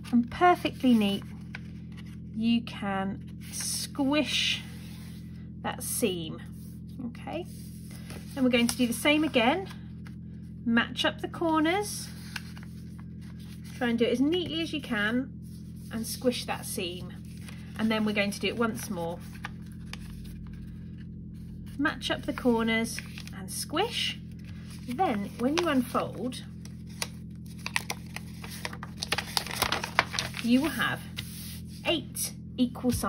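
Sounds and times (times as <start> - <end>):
steady low hum: 0.0 - 33.0
paper rustling: 0.6 - 2.2, 7.5 - 9.4, 12.0 - 13.8, 17.1 - 21.6, 22.3 - 23.3, 24.3 - 31.8.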